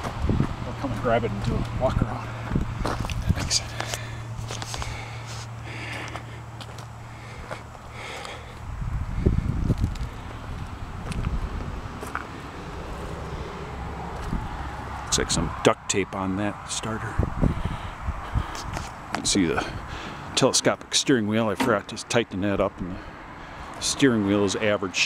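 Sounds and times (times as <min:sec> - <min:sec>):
footsteps crunching on gravel: 0:00.0 - 0:08.7, 0:09.7 - 0:13.1
steady low hum: 0:00.0 - 0:23.7.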